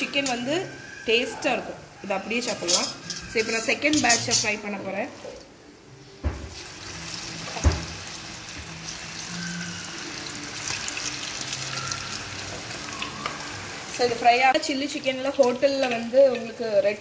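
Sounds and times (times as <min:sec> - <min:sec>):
chicken deep-frying in hot oil: 0:06.4 - 0:17.0.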